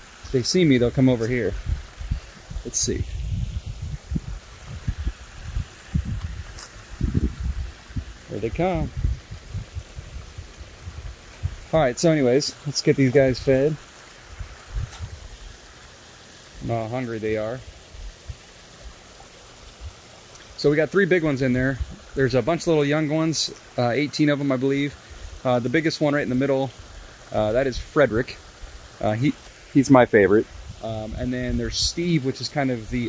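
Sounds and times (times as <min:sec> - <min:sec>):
waterfall pouring into pond: 0:00.0 - 0:33.0
soft low bumps: 0:01.2 - 0:11.8.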